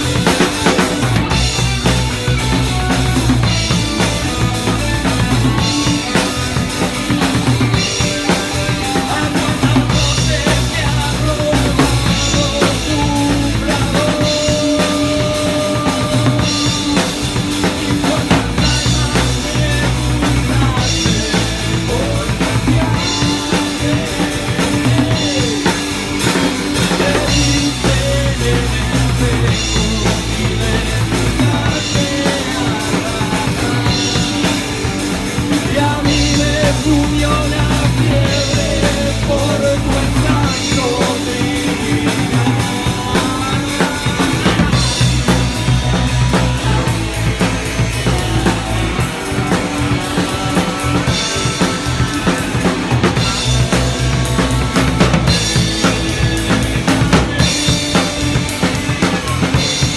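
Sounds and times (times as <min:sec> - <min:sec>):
drum kit: 0:00.0 - 0:59.9
electric guitars: 0:00.0 - 0:59.9
person singing into a microphone: 0:03.4 - 0:53.7.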